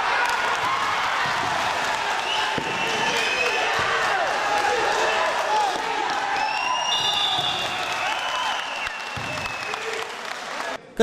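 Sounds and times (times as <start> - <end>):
spectators applauding: 0.0 - 10.8.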